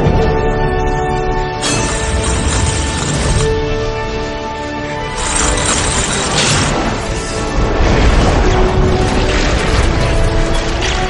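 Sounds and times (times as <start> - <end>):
film score music: 0.0 - 11.0
thunder and lightning effects: 5.2 - 11.0.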